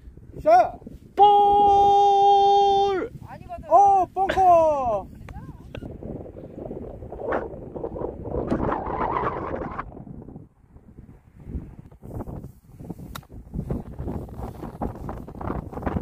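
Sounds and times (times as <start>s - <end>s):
wind buffeting microphone: 0.0s - 16.0s
sharp click: 13.1s - 13.3s.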